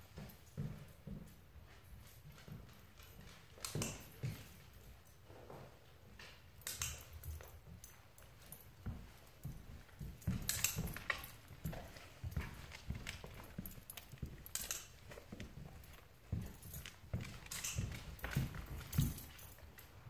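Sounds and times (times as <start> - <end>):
footsteps on hardwood floor: 0.0 - 6.2, 7.0 - 20.0
dog claws clicking: 6.6 - 7.6, 10.1 - 19.9.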